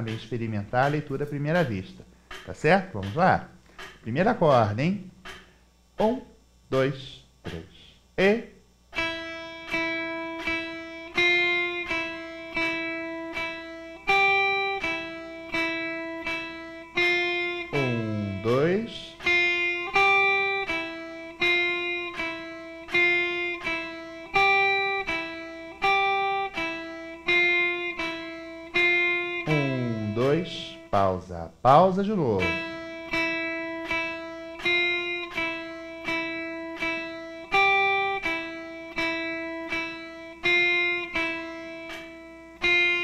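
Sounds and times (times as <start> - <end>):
electric guitar single notes: 0.0 - 2.0, 5.9 - 43.0
metronome clicking: 0.0 - 5.5, 9.0 - 31.1, 32.3 - 43.0.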